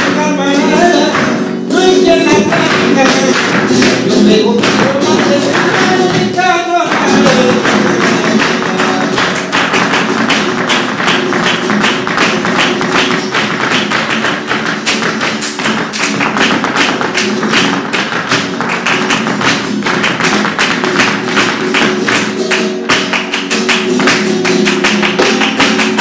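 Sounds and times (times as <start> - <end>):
hand-clapping: 0.0 - 26.0
nylon-string guitar: 0.0 - 26.0
shoe footwork on stage: 0.0 - 26.0.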